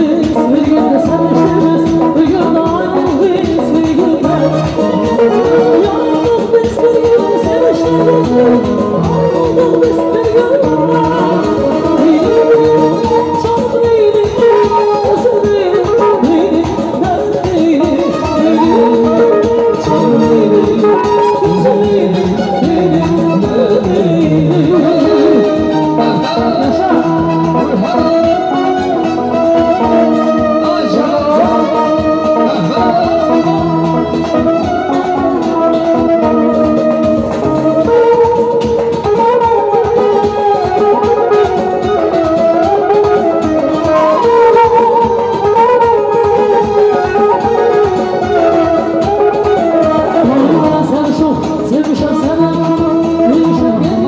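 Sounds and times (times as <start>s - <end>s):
steady drum beat: 0.0s - 54.0s
synthesizer melody: 0.0s - 54.0s.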